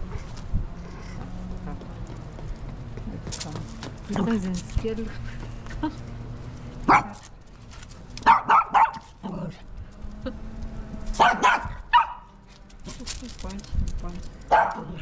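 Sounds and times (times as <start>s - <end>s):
small dog barking: 6.9s - 7.2s, 8.2s - 9.1s, 11.2s - 12.3s, 14.5s - 15.0s.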